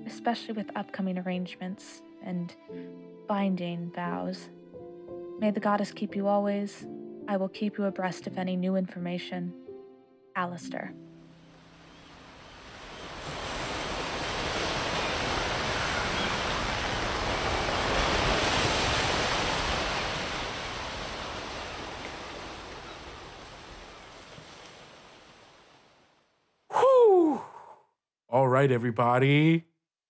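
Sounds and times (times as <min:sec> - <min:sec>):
ocean surf washing: 0:11.2 - 0:26.0.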